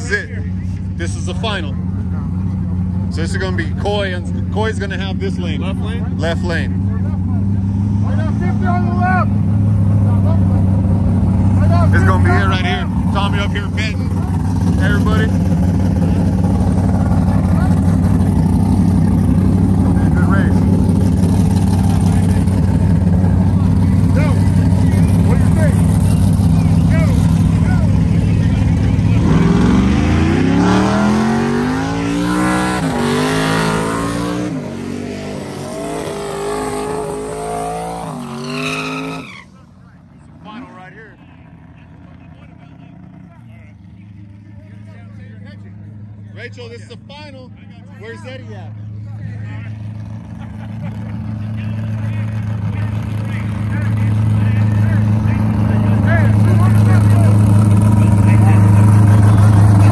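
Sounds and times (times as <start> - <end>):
drag racing car engines: 0.0 - 59.9.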